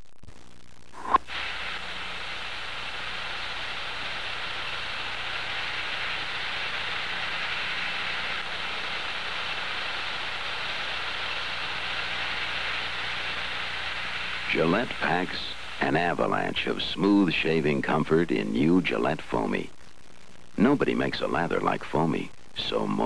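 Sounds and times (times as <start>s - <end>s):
aerosol can hissing foam: 1.0s - 16.2s.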